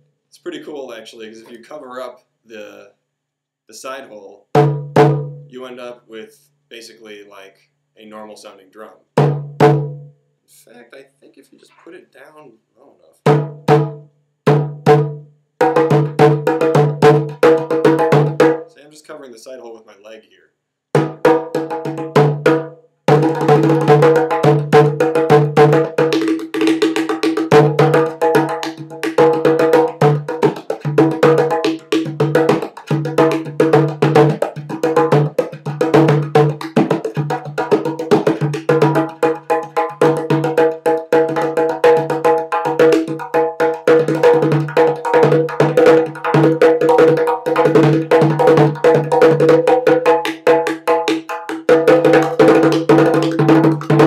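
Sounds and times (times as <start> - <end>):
goblet drum played by hand: 4.5 - 5.5, 9.2 - 10.1, 13.2 - 18.7, 21.0 - 54.0.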